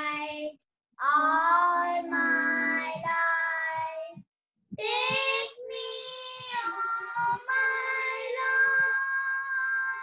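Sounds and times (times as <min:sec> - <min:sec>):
children singing: 0:00.0 - 0:04.1, 0:04.8 - 0:10.0.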